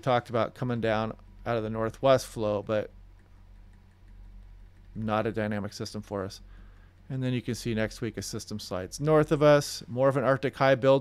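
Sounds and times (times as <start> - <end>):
speech: 0.0 - 2.9, 5.0 - 6.4, 7.1 - 11.0
low steady hum: 0.0 - 11.0.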